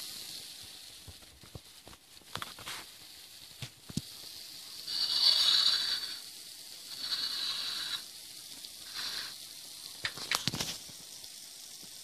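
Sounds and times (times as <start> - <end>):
hot oil sizzling: 0.0 - 12.0.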